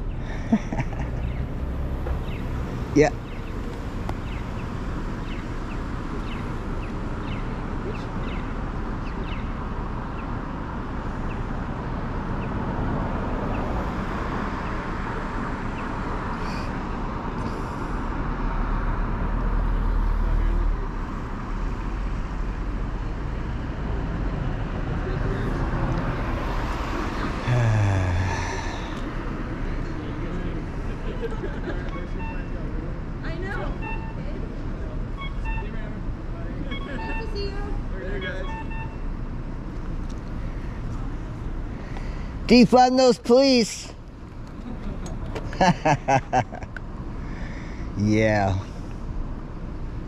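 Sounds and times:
hum of cars: 0.0 - 50.0.

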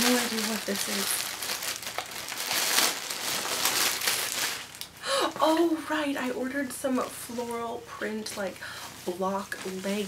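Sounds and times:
plastic bag crinkling: 0.0 - 5.6.

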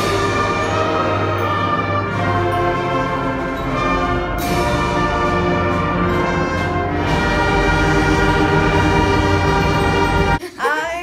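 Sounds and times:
concert band holding a chord: 0.0 - 10.4.

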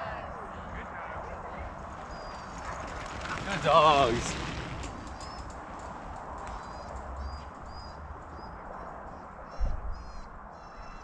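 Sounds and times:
wheeled rig rolling rumble: 1.7 - 7.4
dog paws running on dirt: 1.8 - 8.5.

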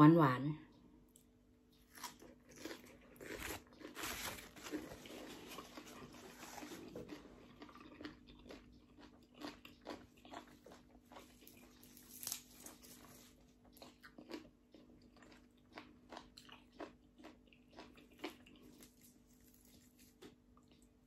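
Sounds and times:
person chewing crunchy food: 1.7 - 21.0.

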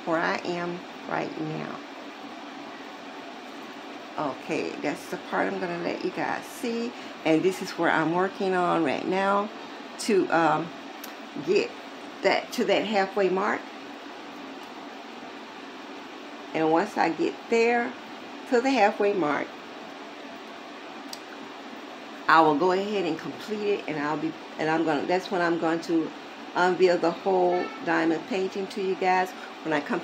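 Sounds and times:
faint room noise hiss: 0.0 - 30.0.

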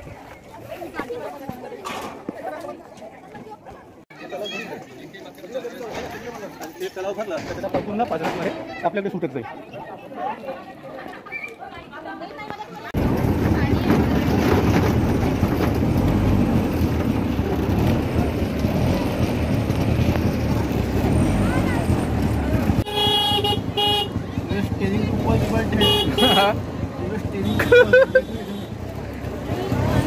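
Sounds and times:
vehicle engines running: 13.0 - 30.0
vehicle horn toots: 22.8 - 24.2, 25.8 - 26.6.

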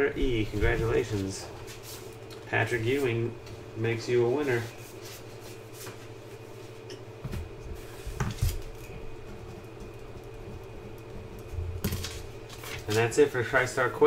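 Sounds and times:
faint steady hum: 0.0 - 14.0.

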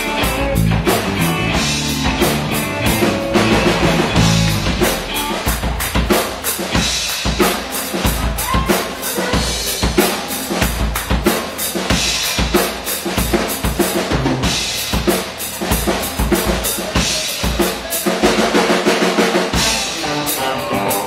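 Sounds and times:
electric guitar chords: 0.0 - 6.1, 19.6 - 21.0
live rock band playing: 0.0 - 21.0.

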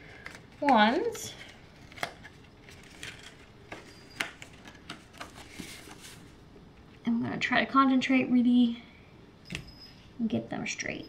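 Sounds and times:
paper rustling: 0.0 - 6.4.

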